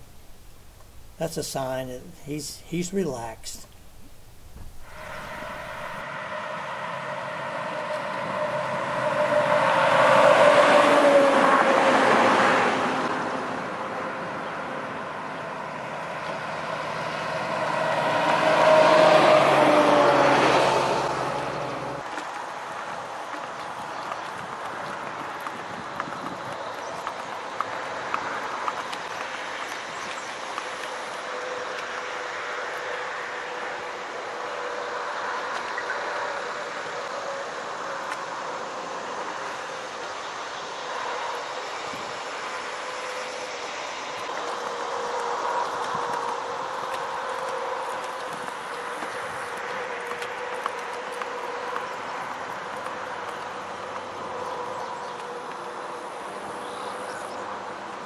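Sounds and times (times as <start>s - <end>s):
truck driving past: 4.1s - 22.1s
hooves clicking on pavement: 15.4s - 33.8s, 41.9s - 58.0s.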